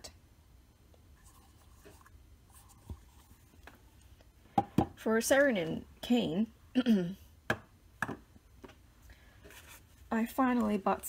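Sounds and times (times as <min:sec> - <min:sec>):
low steady hum: 0:00.0 - 0:11.0
faint rustling of objects: 0:00.8 - 0:06.1, 0:08.5 - 0:11.0.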